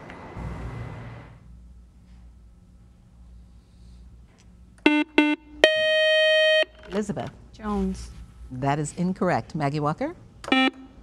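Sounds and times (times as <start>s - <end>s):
short electronic buzzer beeps: 4.8s - 6.7s, 10.5s - 10.8s
steady buzzer tone: 4.8s - 6.8s, 10.5s - 11.0s.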